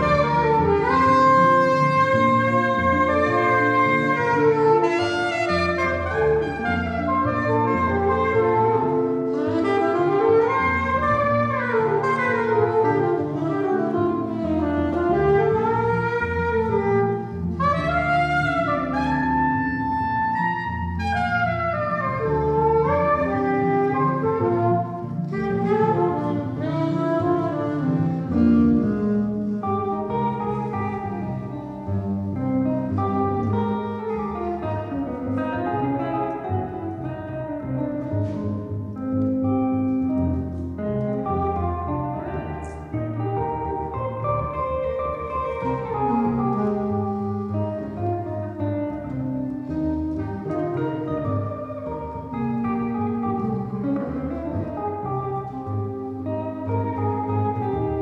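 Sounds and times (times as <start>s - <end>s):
double bass: 0.0s - 58.0s
guitar: 0.0s - 58.0s
saxophone melody: 0.0s - 58.0s.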